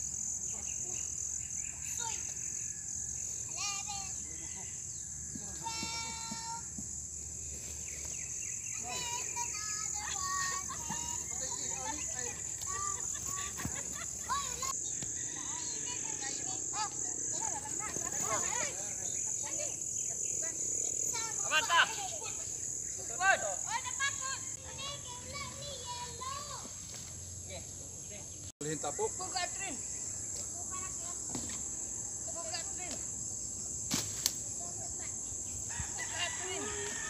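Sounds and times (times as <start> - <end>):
high-pitched insect drone: 0.0 - 26.2, 26.9 - 37.0.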